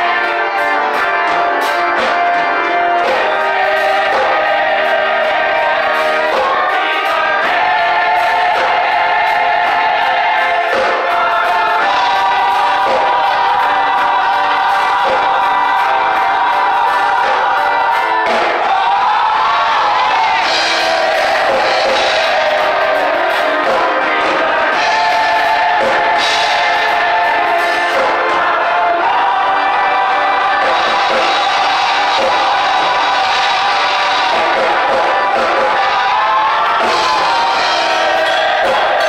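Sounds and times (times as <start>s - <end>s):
gospel choir singing: 0.0s - 39.0s.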